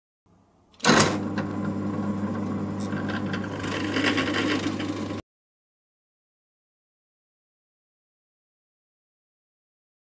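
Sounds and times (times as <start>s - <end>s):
drill press motor hum: 0.8s - 5.2s
cutter scraping through wood: 2.7s - 5.2s.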